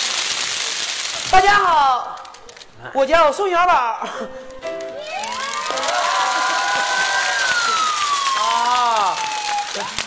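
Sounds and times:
audience applauding and cheering: 0:04.6 - 0:10.0.

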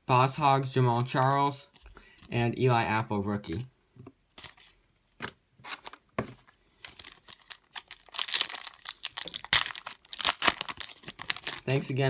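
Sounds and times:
foil wrapper crinkling: 0:06.8 - 0:12.0.

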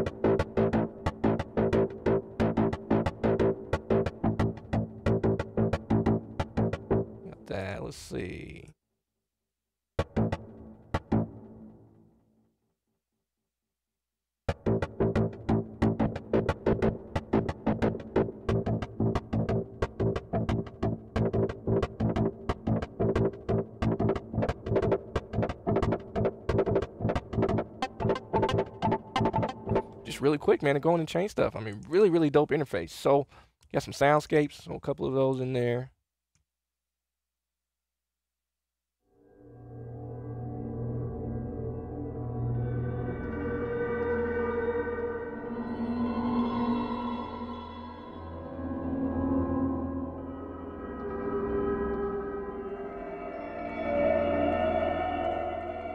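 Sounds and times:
dark bell-like tones with shimmering pad: 0:39.6 - 0:55.9.

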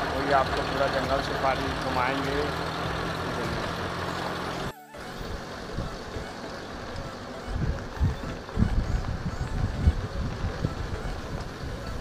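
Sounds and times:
jeep engine running: 0:00.0 - 0:12.0
vehicle rumbling on dirt track: 0:00.0 - 0:12.0.

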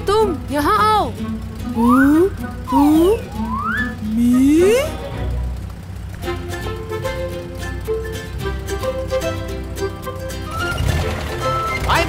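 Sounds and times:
light music with plucked notes: 0:00.0 - 0:12.0
cartoon vocal sounds: 0:01.7 - 0:05.1.

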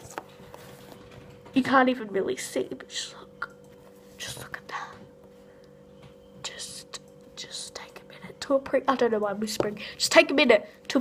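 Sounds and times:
girl whispering: 0:04.2 - 0:05.1, 0:06.4 - 0:08.6.

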